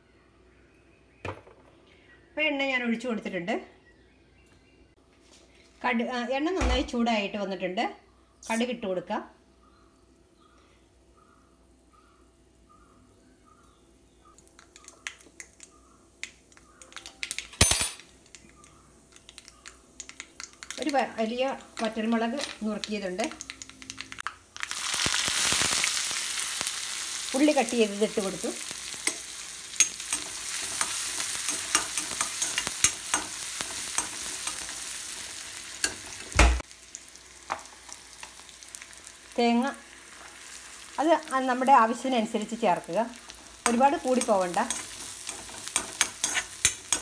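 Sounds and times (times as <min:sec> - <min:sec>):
onion sizzling in hot oil: 0:18.1 - 0:47.0
crackling pops: 0:18.2 - 0:22.0, 0:22.8 - 0:27.1.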